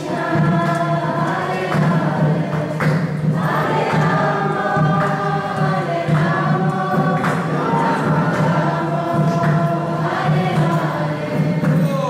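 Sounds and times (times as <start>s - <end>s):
faint percussive strike: 0.0s - 12.0s.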